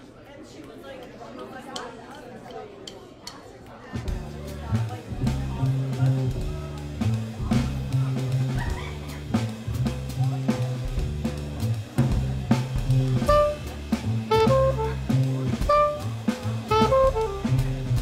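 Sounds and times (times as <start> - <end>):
drum kit: 4.0 - 18.0
upright bass plucking: 4.1 - 18.0
soprano saxophone short notes: 13.2 - 13.7, 14.3 - 17.6.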